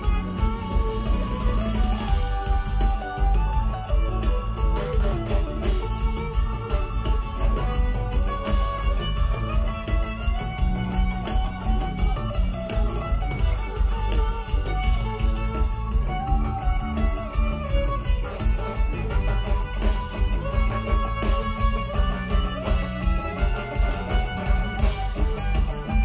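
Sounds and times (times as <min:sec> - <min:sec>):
live band playing: 0:00.0 - 0:26.0
sliding guitar lead line: 0:00.0 - 0:26.0.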